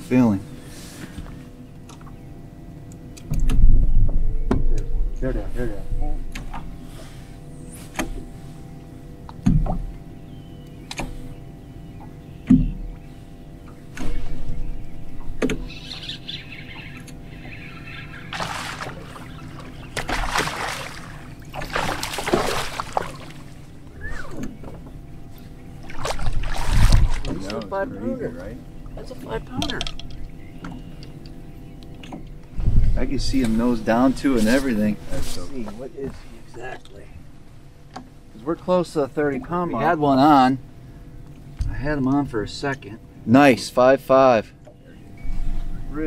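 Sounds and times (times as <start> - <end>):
electric trolling motor humming: 0.0 - 46.0.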